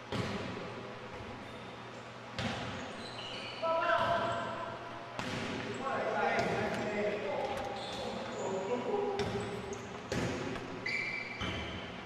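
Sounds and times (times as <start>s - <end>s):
volleyball hits echoing: 2.4s - 2.8s, 5.1s - 8.1s, 9.1s - 10.8s.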